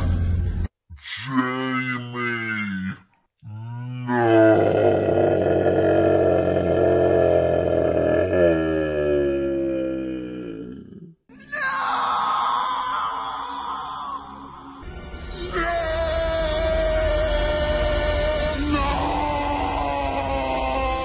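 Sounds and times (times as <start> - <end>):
deep roar-like vocal cry: 3.4 - 11.2.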